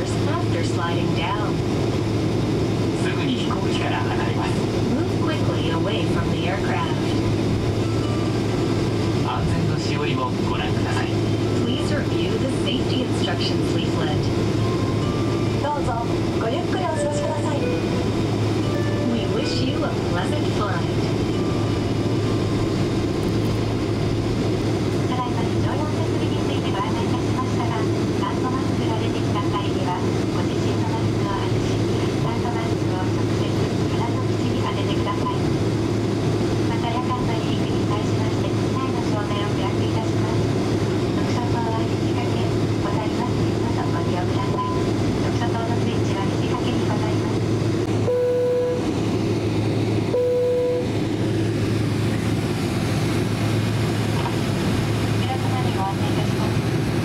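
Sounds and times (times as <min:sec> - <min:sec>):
airliner cabin hum: 0:00.0 - 0:57.0
faint announcement over pa: 0:03.0 - 0:07.3, 0:09.2 - 0:14.4, 0:15.5 - 0:21.8, 0:25.0 - 0:35.5, 0:36.7 - 0:40.5, 0:41.2 - 0:47.4, 0:55.1 - 0:56.6.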